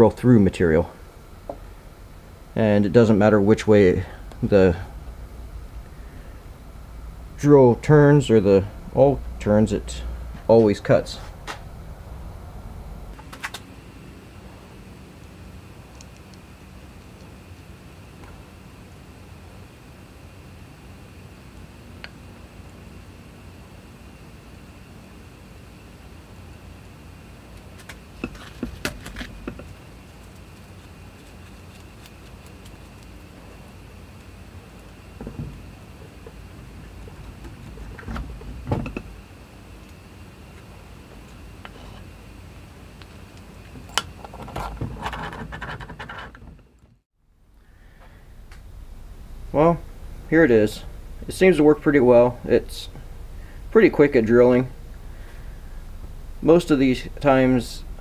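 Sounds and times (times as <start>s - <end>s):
low workshop hum: 0.0s - 58.0s.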